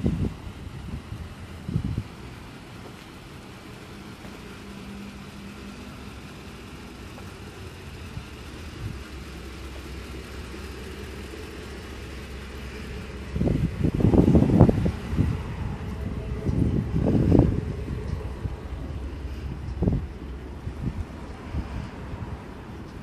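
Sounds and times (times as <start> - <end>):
wind on microphone: 0.0 - 2.3, 12.3 - 23.0
low outdoor rumble: 0.0 - 23.0.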